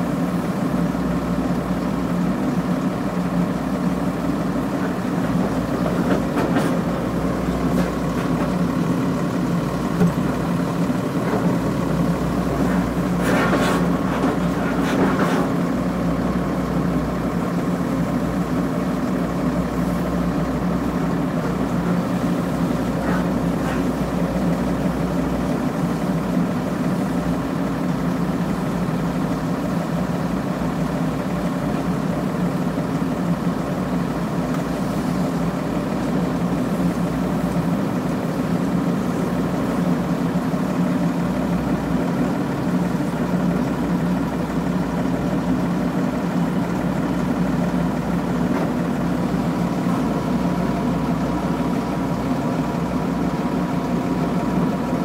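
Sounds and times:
heavy diesel engine running: 0.0 - 55.0.

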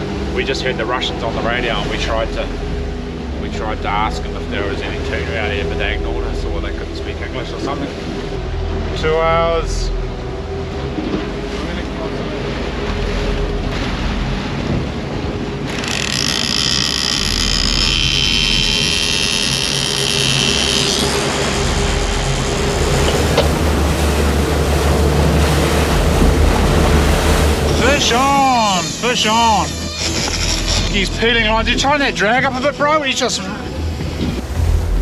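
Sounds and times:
outboard motors running: 0.0 - 35.0
water rushing in wake: 0.0 - 35.0
wind on microphone: 12.3 - 28.9, 33.4 - 35.0
fishing reel drag whine: 15.6 - 24.0, 27.5 - 33.8.

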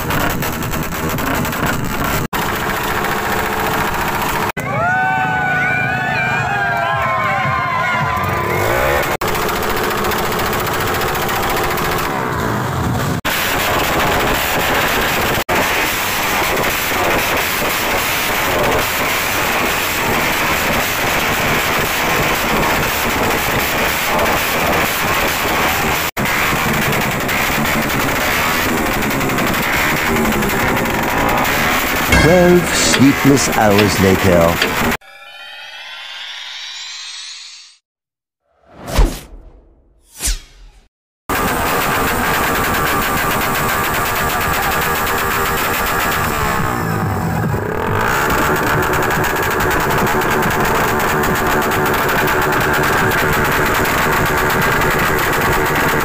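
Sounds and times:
motorcycle engines revving: 0.0 - 4.5, 8.1 - 35.0.

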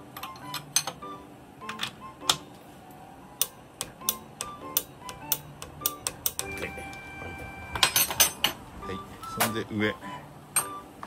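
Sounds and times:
background music: 0.0 - 11.0
spanner clicking on metal nut: 3.4 - 6.5.

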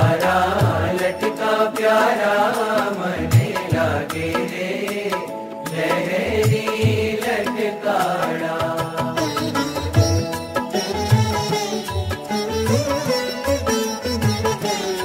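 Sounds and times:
ornamented devotional melody: 0.0 - 15.0.

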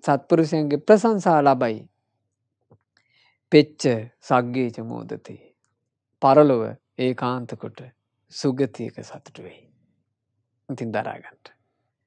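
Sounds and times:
man speaking: 0.0 - 1.9, 3.5 - 5.4, 6.2 - 9.6, 10.7 - 11.5.

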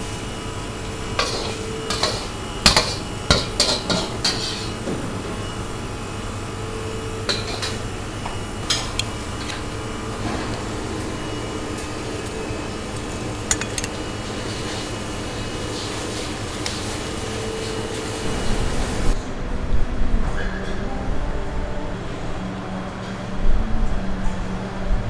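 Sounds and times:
metal utensils clattering: 12.0 - 14.1
tongs clicking: 13.0 - 14.0.

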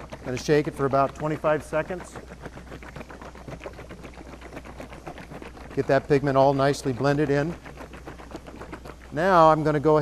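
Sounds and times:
liquid sloshing in plastic jug: 0.0 - 10.0.

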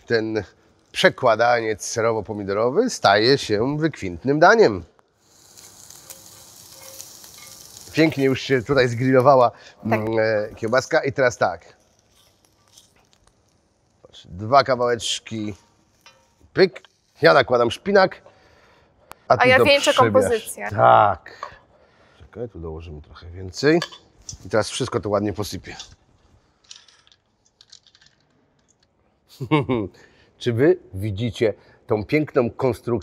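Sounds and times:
sausage sizzling on grill pan: 5.1 - 20.7
food sprinkling rustle and ticks: 5.2 - 9.1, 11.8 - 14.1, 26.6 - 28.8.

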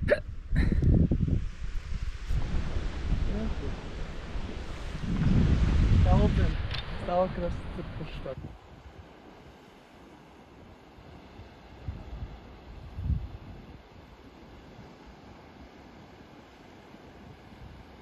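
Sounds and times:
wind buffeting microphone: 0.0 - 9.6, 10.9 - 15.3.

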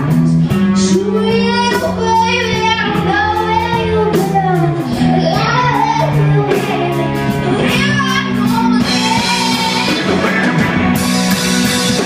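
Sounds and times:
girl singing lead vocal: 0.0 - 10.3
rock band playing: 0.0 - 12.0.

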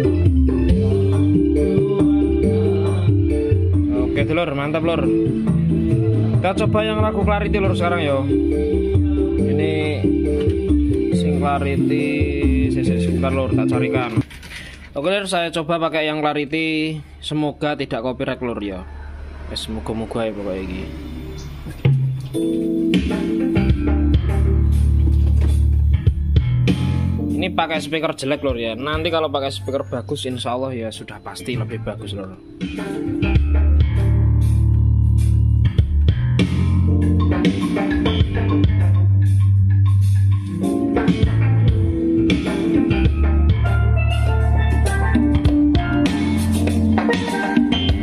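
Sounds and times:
music through poor loudspeaker: 0.0 - 16.1, 20.5 - 48.0.

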